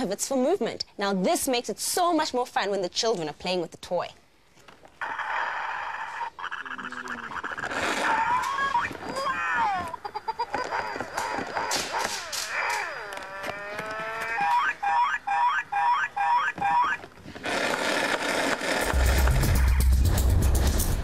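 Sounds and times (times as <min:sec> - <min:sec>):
toy gliding tones: 0:10.4 - 0:17.0
noise with heavy low beat: 0:18.8 - 0:21.0.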